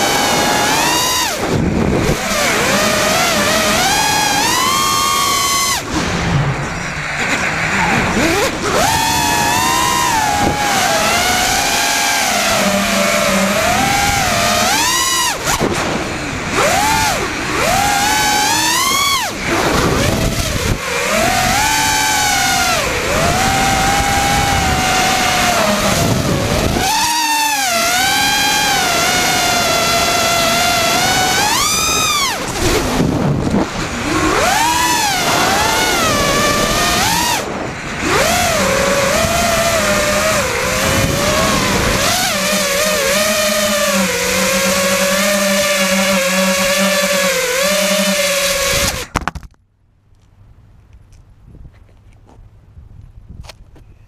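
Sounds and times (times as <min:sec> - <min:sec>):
drone motors whining: 0:00.0 - 0:49.5
wind noise on microphone: 0:00.0 - 0:49.5, 0:50.6 - 0:54.0.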